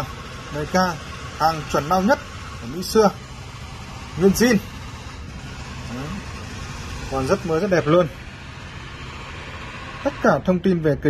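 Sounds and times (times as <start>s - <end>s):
rumble of motor engines: 0.0s - 11.0s.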